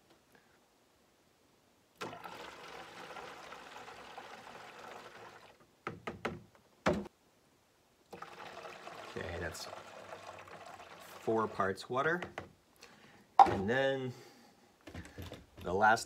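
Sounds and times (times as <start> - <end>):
water pouring into plastic jug: 2.0 - 5.6, 8.1 - 11.8.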